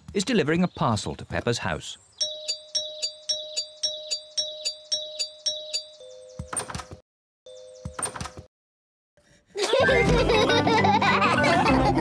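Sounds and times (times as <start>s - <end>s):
rapid doorbell chime: 2.2s - 6.8s, 7.5s - 8.2s.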